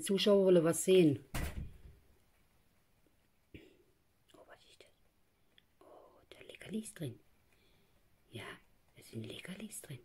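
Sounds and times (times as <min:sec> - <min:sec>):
soft whispered speech: 0:04.2 - 0:07.3, 0:08.2 - 0:10.0.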